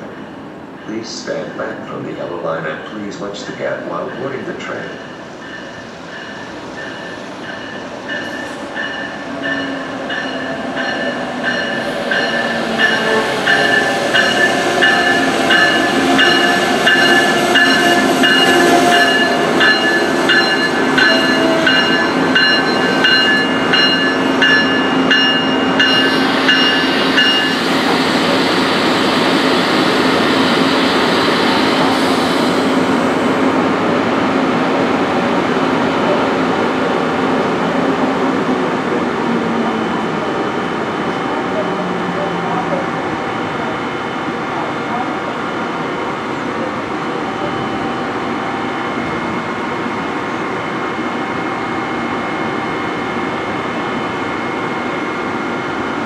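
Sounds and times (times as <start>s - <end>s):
train wheels rolling: 0.0s - 33.5s
locomotive bell ringing: 2.6s - 28.7s.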